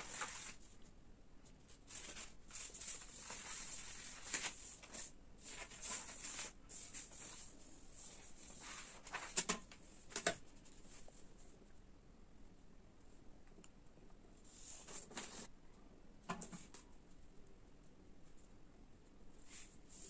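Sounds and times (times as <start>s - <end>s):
paper rustling and sliding: 0.0s - 0.8s, 1.7s - 11.2s, 14.5s - 15.5s.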